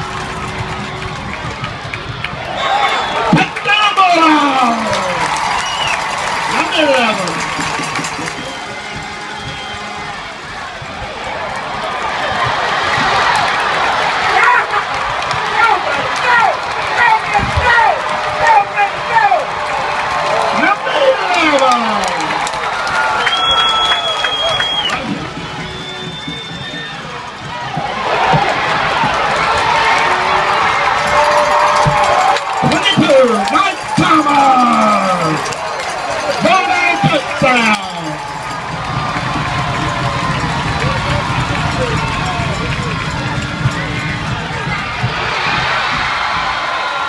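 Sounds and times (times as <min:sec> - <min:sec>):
crowd cheering and shouting: 0:00.0 - 0:47.0
short high whistle: 0:08.3 - 0:10.1, 0:23.2 - 0:27.0.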